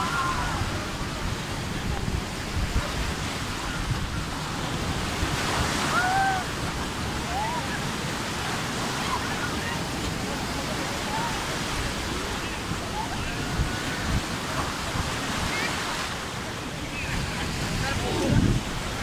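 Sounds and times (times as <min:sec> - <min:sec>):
people calling and shouting: 0:05.8 - 0:19.0.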